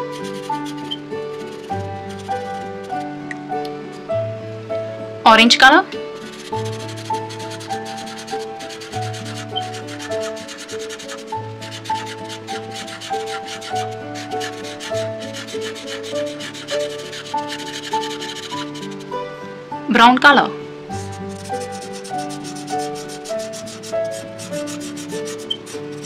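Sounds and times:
marker scratching on paper: 0.0 - 3.1, 6.2 - 19.1, 21.0 - 26.0.

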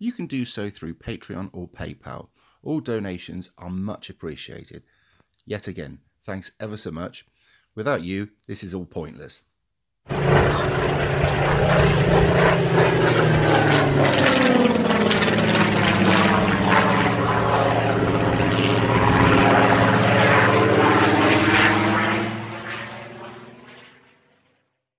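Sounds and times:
propeller aircraft flying past: 10.1 - 24.8.

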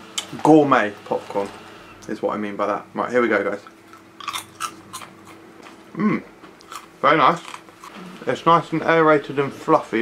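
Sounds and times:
popcorn crunching while chewed: 3.5 - 8.4.

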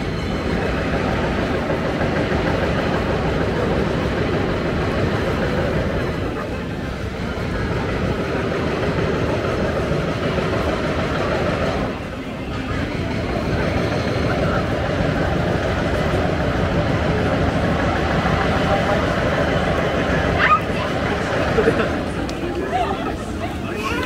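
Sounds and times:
crowd chatter: 0.0 - 24.0
traffic noise: 0.0 - 24.0.

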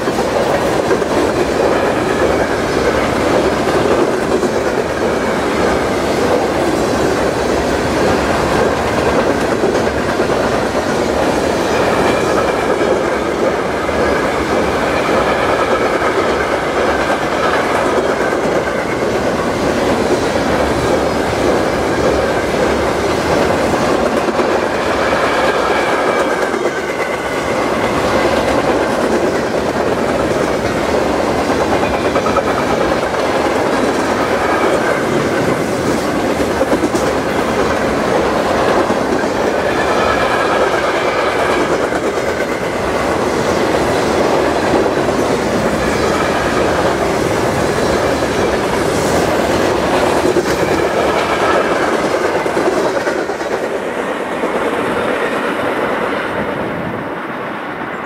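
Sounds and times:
freight train wheels on rails: 0.0 - 58.0.

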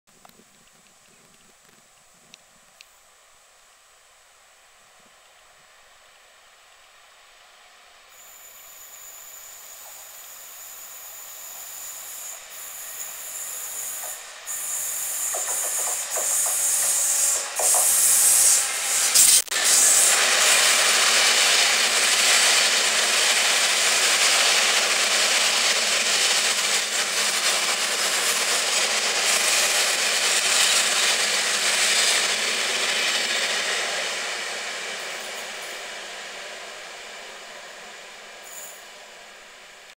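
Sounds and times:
diesel locomotive passing: 6.9 - 39.9.

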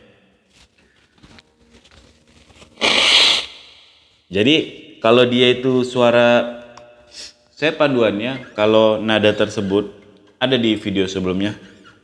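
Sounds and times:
man blowing nose: 2.8 - 3.8.

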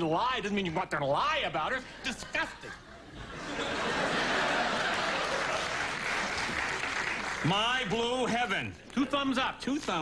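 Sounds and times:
audience applauding: 4.1 - 7.8.

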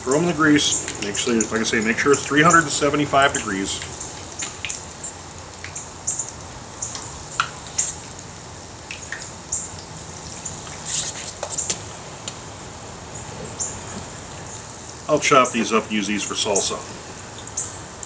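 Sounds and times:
onion rings frying in oil: 0.0 - 18.0.

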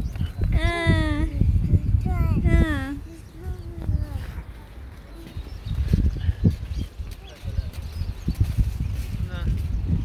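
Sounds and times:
faint voices: 0.5 - 7.9.

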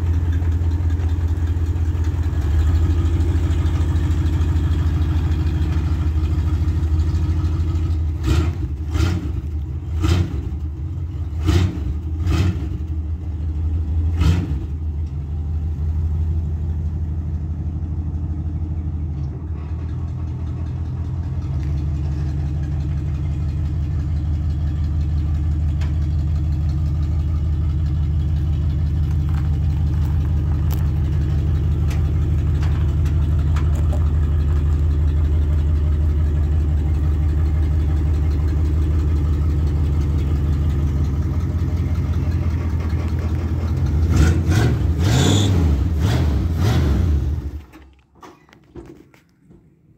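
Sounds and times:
pickup engine idling and revving: 0.0 - 47.7.

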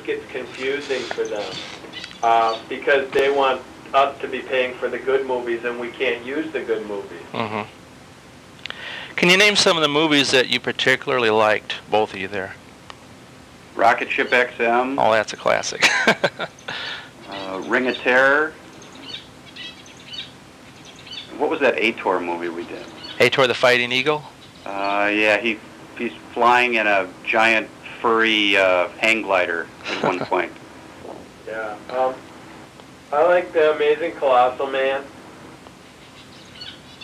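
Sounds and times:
low recording hiss: 0.0 - 37.0
faint bird chirps: 0.3 - 2.9, 13.8 - 14.6, 16.3 - 26.6, 35.8 - 37.0.

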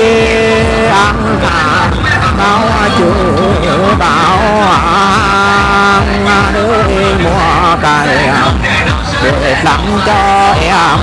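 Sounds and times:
person singing folk song: 0.0 - 11.0
steady low beat: 0.0 - 11.0.

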